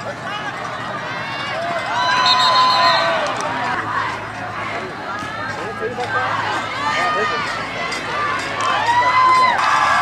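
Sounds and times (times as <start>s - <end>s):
crowd shouting and cheering: 0.0s - 10.0s.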